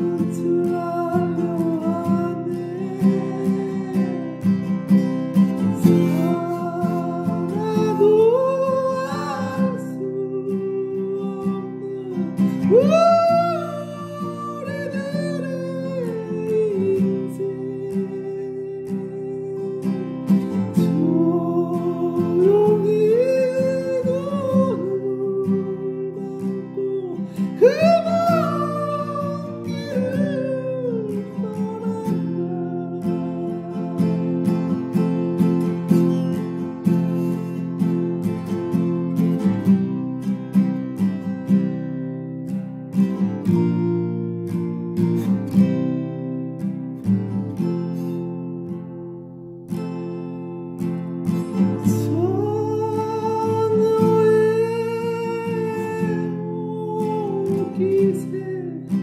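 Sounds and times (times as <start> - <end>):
person singing: 0.0 - 37.7, 51.4 - 59.0
acoustic guitar playing: 0.0 - 59.0.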